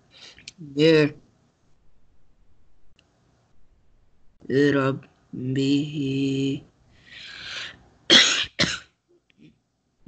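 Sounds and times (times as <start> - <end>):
person coughing: 8.1 - 9.0.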